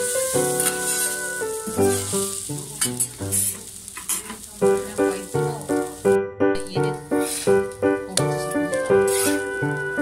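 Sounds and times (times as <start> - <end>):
food sizzling on a griddle: 0.0 - 10.0
background music: 4.8 - 10.0.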